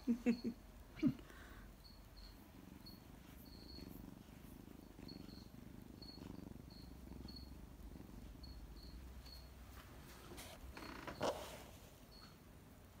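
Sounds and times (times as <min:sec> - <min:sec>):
kitten purring: 0:00.2 - 0:11.8.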